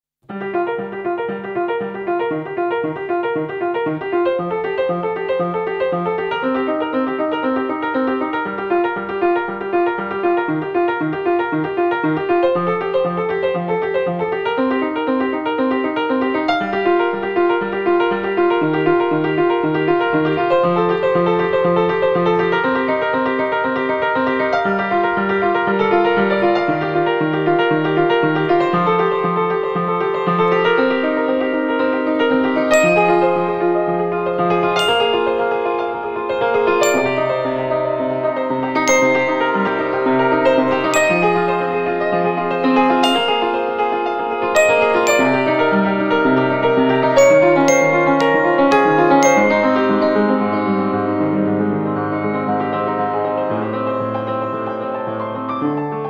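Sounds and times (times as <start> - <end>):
solo piano repeated chords: 0.2 - 56.0.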